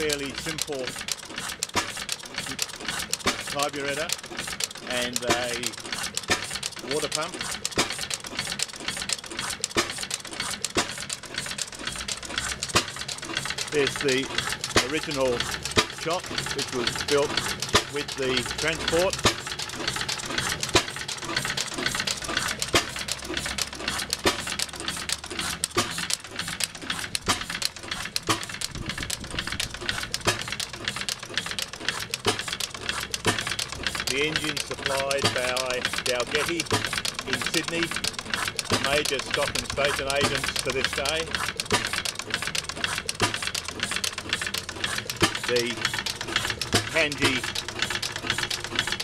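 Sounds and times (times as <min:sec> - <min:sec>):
stationary engine clattering: 0:00.0 - 0:49.0.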